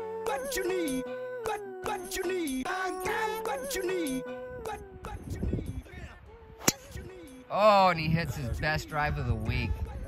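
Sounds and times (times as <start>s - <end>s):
golf club striking ball: 6.6s - 6.9s.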